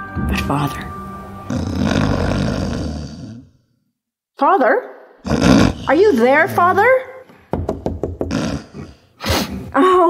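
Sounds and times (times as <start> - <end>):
man snoring loudly: 1.5 - 3.5, 5.2 - 7.0, 8.2 - 9.1.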